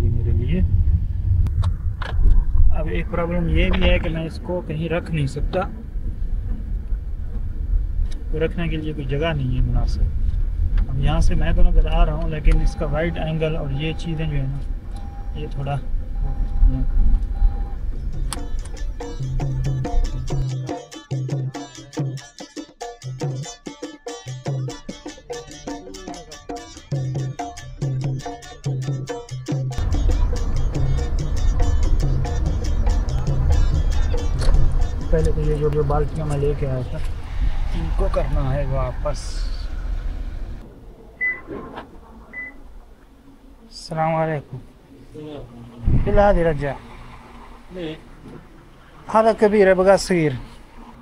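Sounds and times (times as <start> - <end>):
car cabin rumble: 0.0 - 20.6, 29.8 - 43.2
high-pitched electronic beeps: 12.6 - 17.9, 41.2 - 41.5, 42.3 - 42.6
percussive music with hand drums: 17.9 - 35.8.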